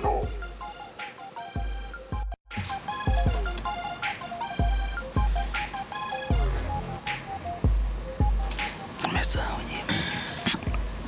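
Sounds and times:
repeating synth melody: 0:00.0 - 0:09.5
hip-hop beat with deep bass kicks: 0:00.0 - 0:11.0.

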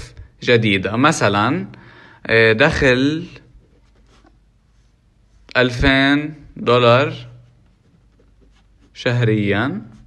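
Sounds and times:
person speaking: 0:02.3 - 0:10.0.

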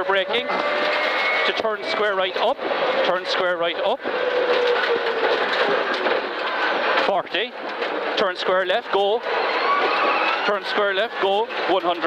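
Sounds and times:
car engine: 0:00.0 - 0:12.0
road and tyre noise: 0:00.0 - 0:12.0.

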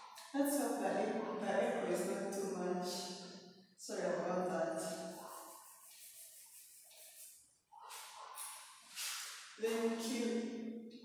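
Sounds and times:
woman's voice: 0:00.2 - 0:03.1, 0:03.8 - 0:05.0, 0:09.6 - 0:10.4
woman breathing or whispering: 0:07.7 - 0:09.3.

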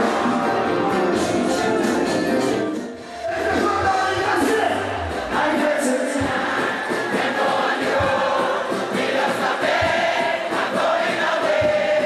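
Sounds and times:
many voices singing together: 0:00.0 - 0:01.9, 0:04.9 - 0:12.0
live concert music: 0:00.0 - 0:12.0.

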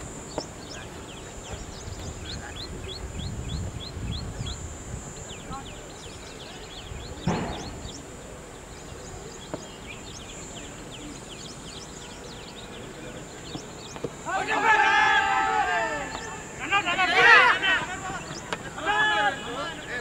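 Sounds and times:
birds chirping: 0:00.0 - 0:20.0
steady high hiss: 0:00.0 - 0:20.0.

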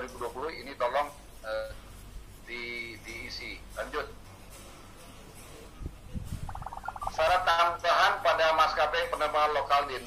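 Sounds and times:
man talking: 0:07.0 - 0:10.0.

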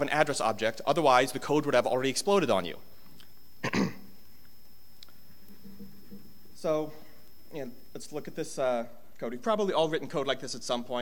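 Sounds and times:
man clearing his throat: 0:03.6 - 0:04.1.

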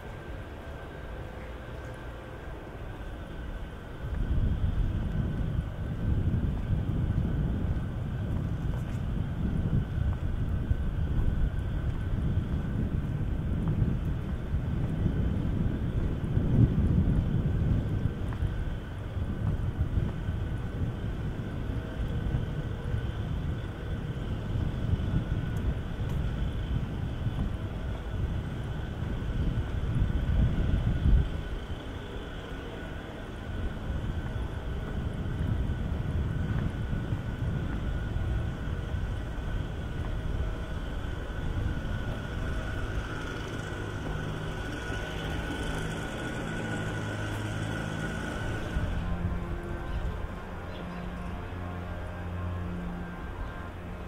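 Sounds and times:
distant traffic rumble: 0:00.0 - 0:54.0.

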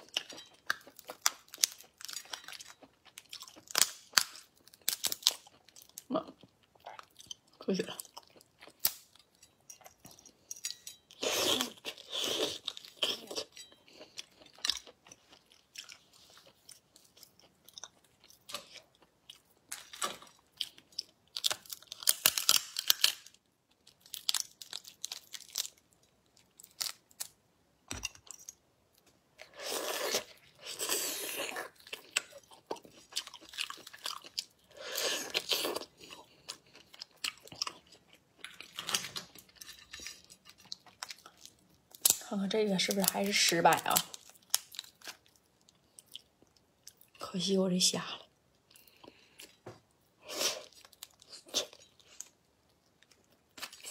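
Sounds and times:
chewing: 0:00.0 - 0:22.7, 0:29.5 - 0:42.2
shell cracking and crackling: 0:03.3 - 0:06.0, 0:08.7 - 0:09.1, 0:19.7 - 0:25.9, 0:40.4 - 0:45.2.

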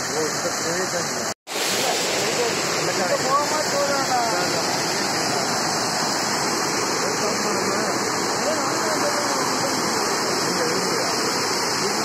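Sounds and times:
water rushing down a weir: 0:00.0 - 0:12.0.

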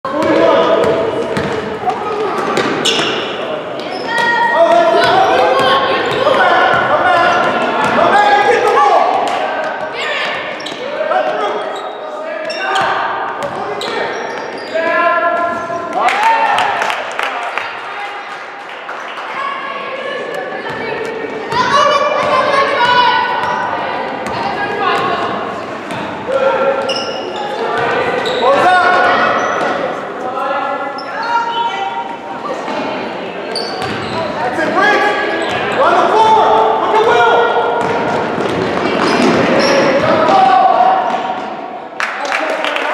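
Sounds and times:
basketball bouncing on hardwood floor: 0:01.3 - 0:01.6.

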